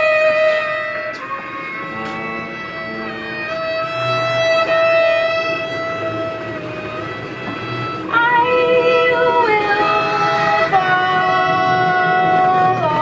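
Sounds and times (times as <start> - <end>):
violin: 0.0 - 13.0.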